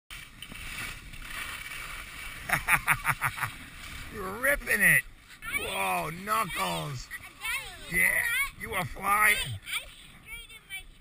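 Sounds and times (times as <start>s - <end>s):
skis sliding over snow: 0.1s - 10.8s.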